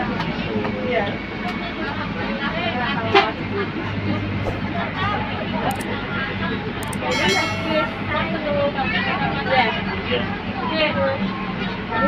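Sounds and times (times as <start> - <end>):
passengers talking: 1.6 - 8.5.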